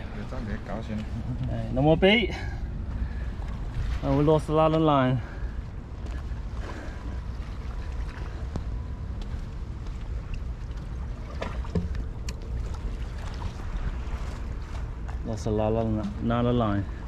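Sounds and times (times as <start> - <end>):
low wind rumble on microphone: 0.0 - 17.0.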